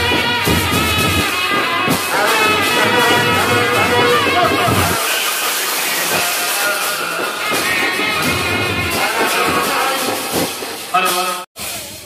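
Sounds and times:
loud steady hiss: 0.0s - 12.0s
street band procession music: 0.0s - 12.0s.

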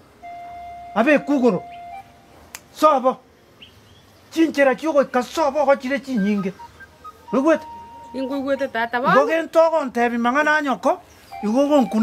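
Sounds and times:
person talking animatedly: 7.3s - 10.6s.

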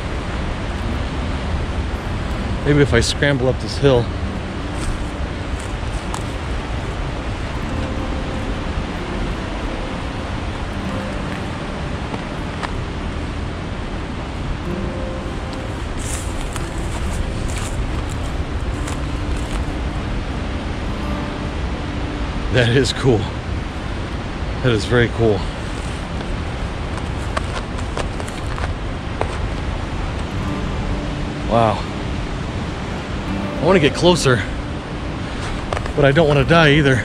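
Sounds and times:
river water rushing over rocks: 0.0s - 37.0s
footsteps in dry grass: 4.2s - 13.4s, 15.2s - 20.4s, 25.5s - 30.2s, 35.2s - 36.1s.

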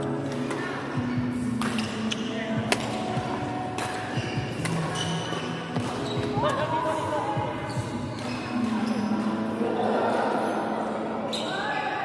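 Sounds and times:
players' voices and chatter: 0.0s - 12.0s
badminton racket hitting shuttlecock: 1.5s - 6.4s.

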